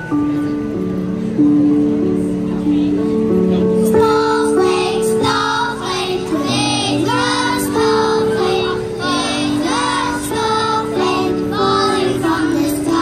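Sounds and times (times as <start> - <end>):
children singing through a pa: 3.8 - 13.0.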